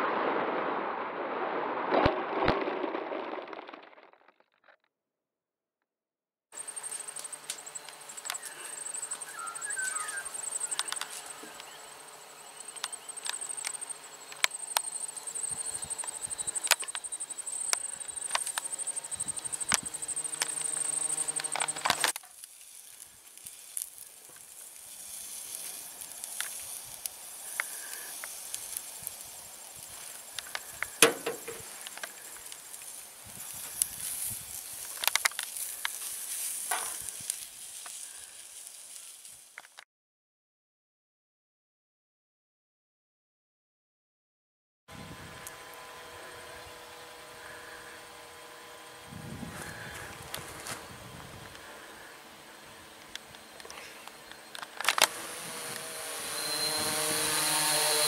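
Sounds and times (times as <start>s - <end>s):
insect trill: 6.6s - 38.9s, 52.0s - 58.0s
scattered clicks: 6.8s - 11.8s, 12.7s - 22.5s
sausages sizzling on a griddle: 22.0s - 39.5s
knocks: 31.0s - 31.6s.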